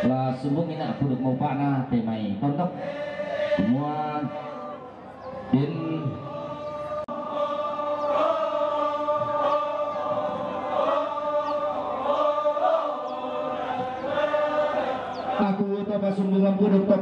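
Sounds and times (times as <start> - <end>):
group chanting long notes: 0.0 - 17.0.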